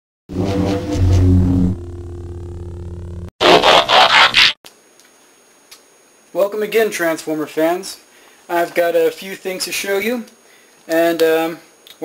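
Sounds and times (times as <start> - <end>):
loud low drone: 0.3 - 3.3
faint hiss: 4.7 - 12.0.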